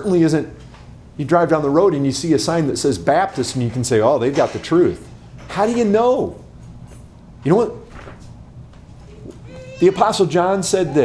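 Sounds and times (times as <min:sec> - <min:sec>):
man speaking: 0:09.8 - 0:11.0.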